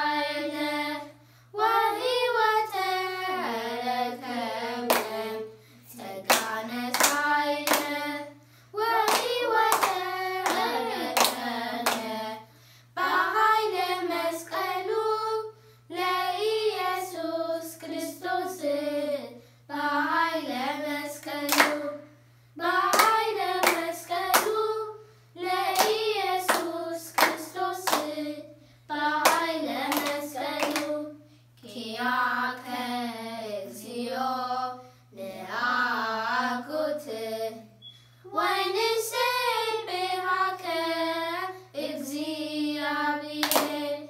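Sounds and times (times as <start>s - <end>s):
children singing a hymn: 0.0s - 22.0s, 22.6s - 37.7s, 38.3s - 44.0s
hand claps: 4.9s - 5.1s, 6.3s - 8.0s, 9.0s - 12.1s, 21.5s - 21.8s, 22.9s - 24.6s, 25.8s - 28.1s, 29.2s - 31.0s, 43.4s - 43.8s.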